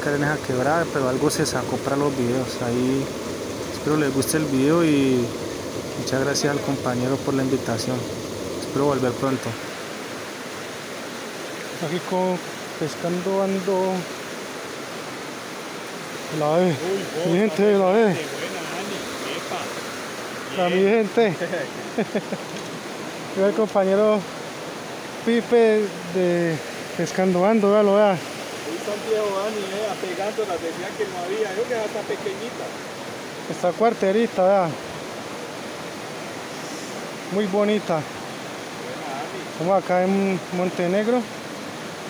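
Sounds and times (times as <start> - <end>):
creek flowing over rocks: 0.0 - 42.0.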